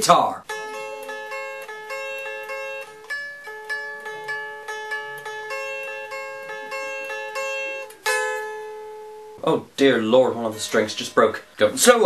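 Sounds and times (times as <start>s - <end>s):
electric guitar single notes: 0.5s - 12.0s.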